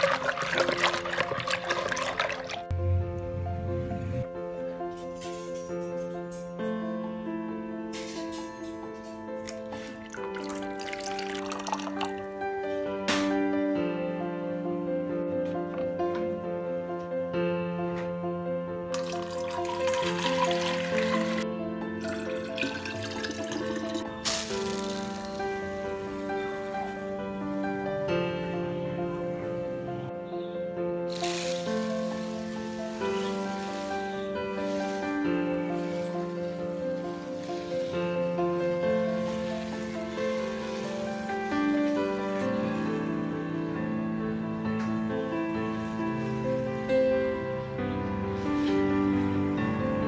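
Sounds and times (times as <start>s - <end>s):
liquid pouring into plastic tank: 0.0s - 2.7s, 10.1s - 12.2s, 22.1s - 24.0s
water sloshing in bucket: 0.0s - 2.7s
soft piano music: 0.0s - 50.0s.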